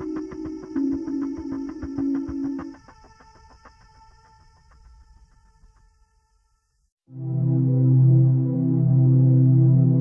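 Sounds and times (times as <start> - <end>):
low synthesizer drone: 7.2 - 10.0.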